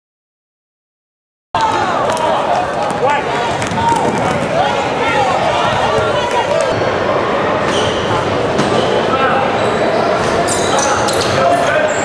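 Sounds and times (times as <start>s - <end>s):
voices of players and spectators: 1.6s - 12.0s.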